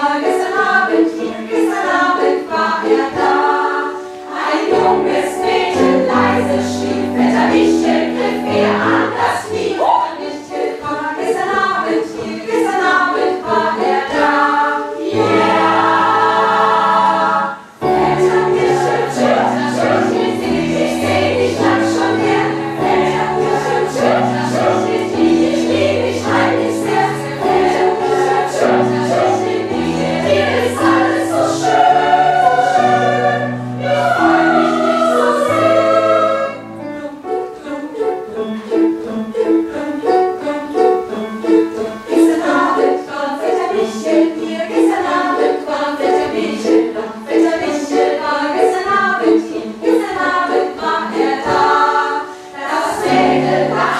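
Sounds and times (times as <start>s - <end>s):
mixed choir singing: 0.0s - 53.9s.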